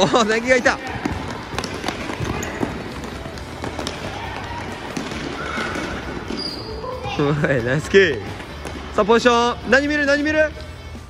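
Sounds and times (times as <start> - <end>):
running footsteps: 0.0 - 9.7
court noise: 0.0 - 11.0
ball touches: 0.7 - 7.2.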